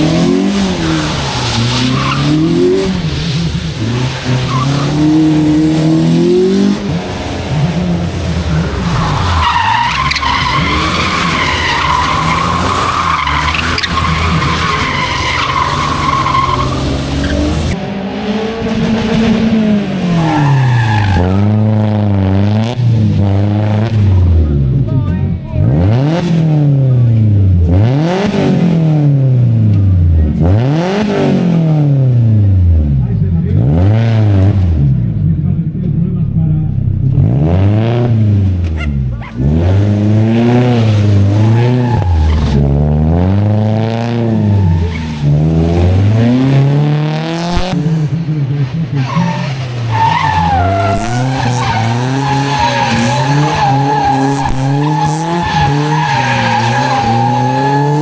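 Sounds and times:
car engine revving: 0.0 - 58.0
tyres squealing: 8.6 - 17.8, 40.8 - 46.4, 49.0 - 58.0.

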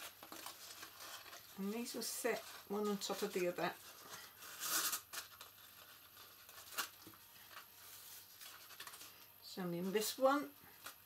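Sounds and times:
card taps and crinkles: 0.0 - 1.5, 5.1 - 7.7.

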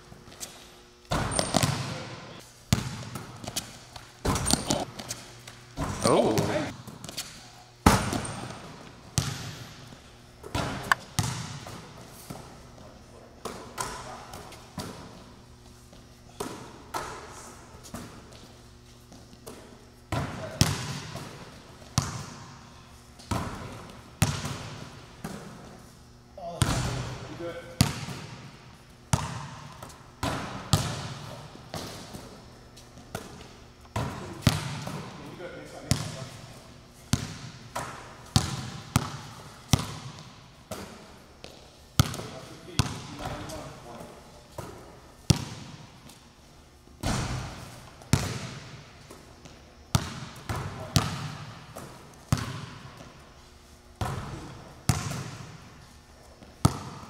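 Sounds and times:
ball striking rim and backboard: 1.1 - 5.1, 5.8 - 12.4, 19.4 - 22.6, 23.2 - 25.7, 26.6 - 27.2, 27.8 - 28.5, 29.1 - 32.4, 33.0 - 35.2, 35.9 - 36.3, 37.1 - 43.6, 44.6 - 45.9, 47.0 - 49.2, 49.9 - 53.0, 54.0 - 55.6, 56.6 - 57.0
basketballs bouncing on gym floor: 1.1 - 5.2, 5.8 - 25.8, 26.4 - 46.2, 47.0 - 53.1, 54.0 - 55.7, 56.4 - 57.0.

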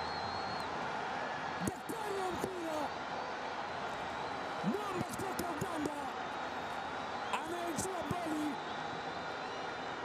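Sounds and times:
stadium crowd noise: 0.0 - 10.0
man shouting commentary: 1.7 - 2.9, 7.4 - 8.6.

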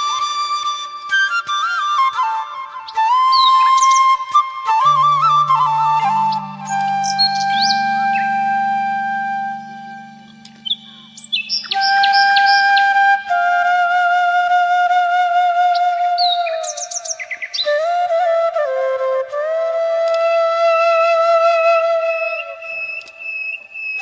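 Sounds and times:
slow flute melody: 0.0 - 24.0
low drone: 5.3 - 13.3
bird chirps: 5.5 - 13.0.

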